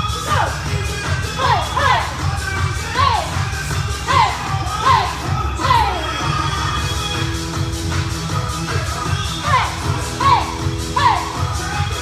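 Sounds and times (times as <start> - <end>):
workout music with bass beat: 0.0 - 12.0
women shouting short high calls: 9.5 - 11.4.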